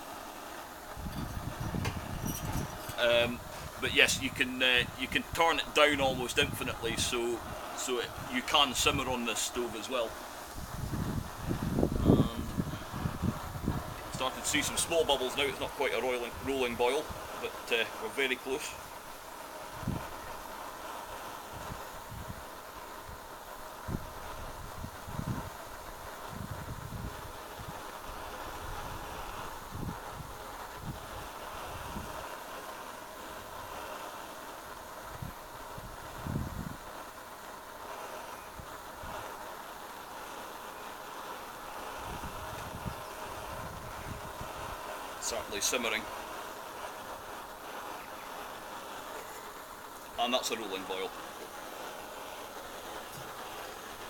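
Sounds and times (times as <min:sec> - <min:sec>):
petrol stove hissing: 0:00.0 - 0:54.0
wind thumps on microphone: 0:00.9 - 0:05.0, 0:10.5 - 0:14.9, 0:21.5 - 0:22.5, 0:23.8 - 0:27.8, 0:35.0 - 0:36.9, 0:42.0 - 0:44.8.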